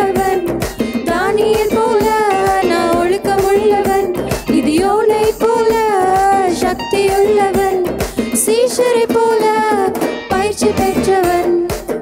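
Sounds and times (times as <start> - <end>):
music with steady drum beat: 0.0 - 12.0
women singing into microphones: 0.0 - 12.0.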